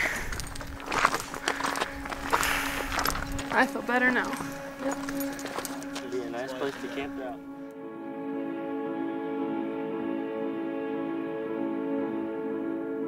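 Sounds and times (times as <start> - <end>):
footsteps crunching on rocky trail: 0.0 - 7.5
background music steady tone: 0.0 - 13.0.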